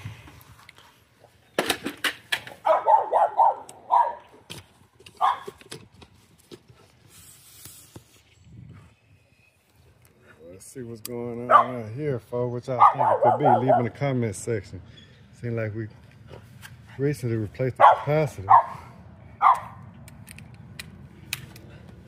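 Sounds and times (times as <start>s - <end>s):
dog barking: 2.6s - 4.3s, 5.2s - 5.5s, 11.5s - 11.8s, 12.8s - 13.9s, 17.8s - 18.8s, 19.4s - 19.8s.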